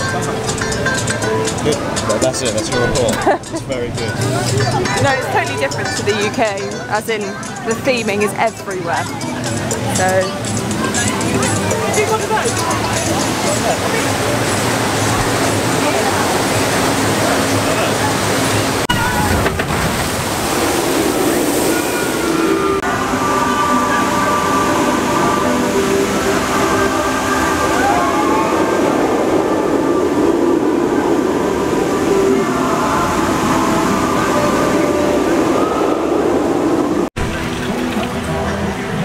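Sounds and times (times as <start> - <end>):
roller coaster running: 0.0 - 6.1, 6.9 - 39.0
people's voices: 0.0 - 19.9, 20.6 - 39.0
water rushing and splashing: 0.0 - 39.0.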